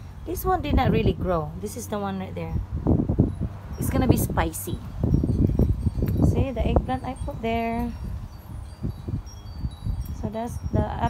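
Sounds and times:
wind chime ringing: 0:01.7 - 0:11.0.

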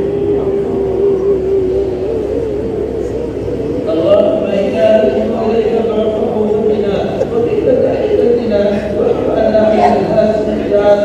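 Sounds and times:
man chanting a long note: 0:00.0 - 0:11.0.

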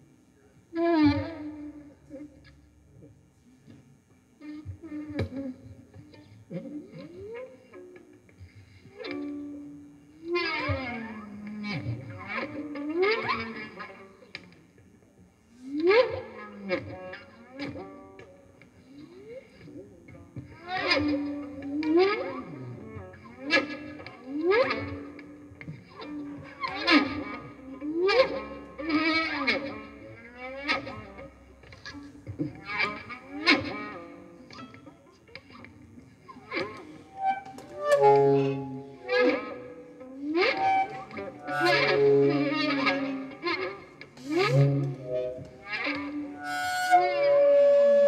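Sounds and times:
saxophone sliding notes: 0:36.5 - 0:48.0
violin sliding notes: 0:36.5 - 0:48.0.

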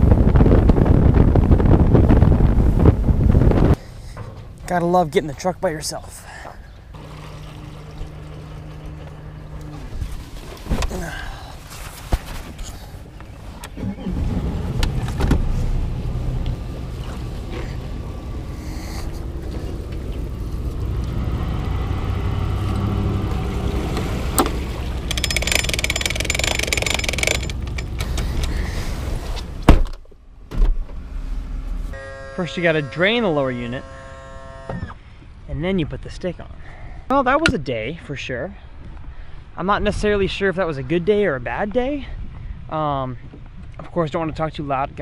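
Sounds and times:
engine low rumble: 0:00.0 - 0:32.0
clattering handling noises: 0:23.9 - 0:28.7.

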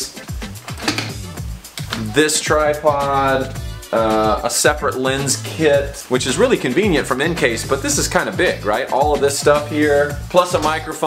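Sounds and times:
low sustained bass notes: 0:01.1 - 0:08.7.

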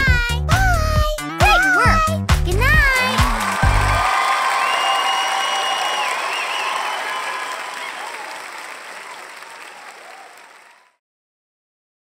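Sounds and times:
applause: 0:02.8 - 0:11.0
faint cheers: 0:03.0 - 0:11.0.

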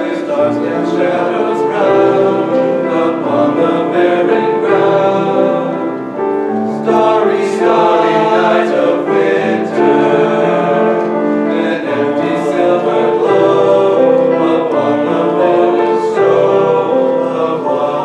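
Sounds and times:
boys choir singing in harmony: 0:00.0 - 0:18.0.

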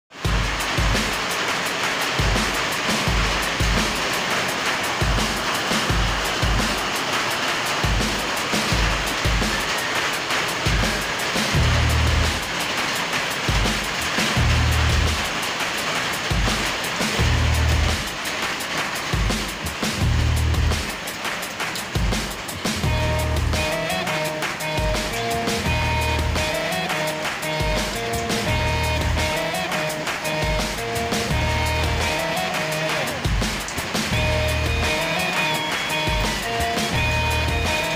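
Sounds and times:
music with steady bass beat: 0:00.1 - 0:07.1, 0:07.7 - 0:15.6, 0:16.2 - 0:37.9
constant rushing hiss: 0:00.1 - 0:37.9.

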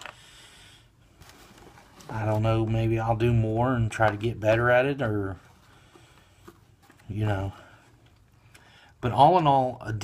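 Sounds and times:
plastic parts moved in cardboard box: 0:01.2 - 0:02.7.

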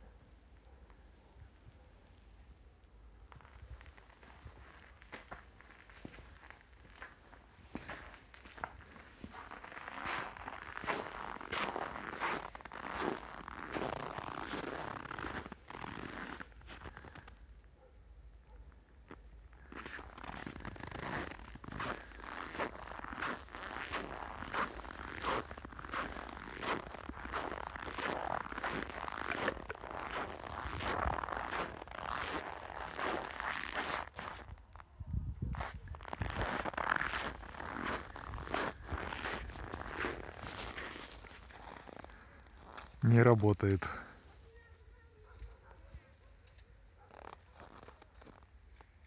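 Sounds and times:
footsteps crunching in snow: 0:03.3 - 0:17.3, 0:19.7 - 0:34.8, 0:35.5 - 0:44.0, 0:47.0 - 0:48.9.

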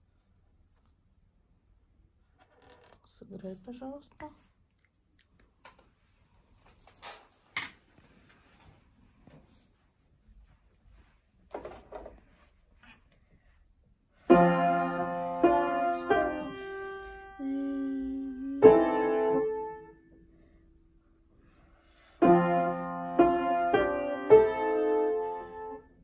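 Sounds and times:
piano chords: 0:14.3 - 0:20.2, 0:22.2 - 0:26.0.

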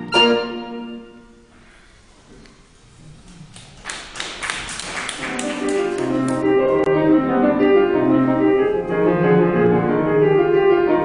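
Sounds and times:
chamber music with piano: 0:00.0 - 0:01.6, 0:05.1 - 0:11.0
audience applauding: 0:03.2 - 0:06.9.

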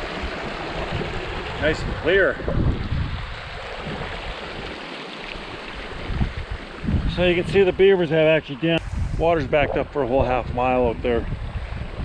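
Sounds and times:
water rushing through dam breach: 0:00.0 - 0:10.2.

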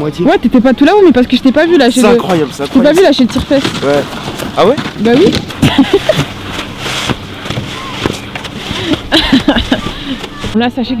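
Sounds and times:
skis sliding on packed snow: 0:02.1 - 0:10.6
voices and laughter: 0:05.5 - 0:06.8, 0:08.6 - 0:10.6.

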